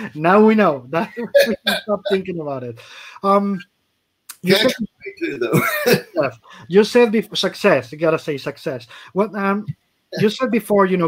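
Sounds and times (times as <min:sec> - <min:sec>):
man speaking: 0:00.0 - 0:03.6, 0:04.3 - 0:11.0
man clearing his throat: 0:01.1 - 0:02.2, 0:04.4 - 0:06.3.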